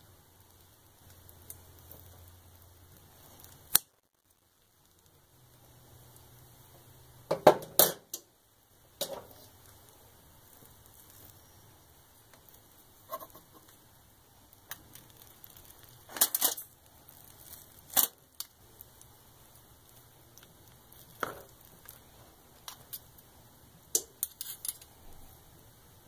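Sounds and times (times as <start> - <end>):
cutlery scraping a foil pan: 13.1 - 13.7, 24.0 - 24.8.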